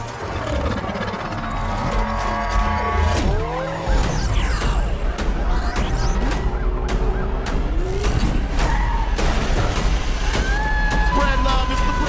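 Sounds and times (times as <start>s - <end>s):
high mechanical whine: 0.0s - 8.5s
tires screeching: 0.0s - 12.0s
music with heavy bass: 1.8s - 12.0s.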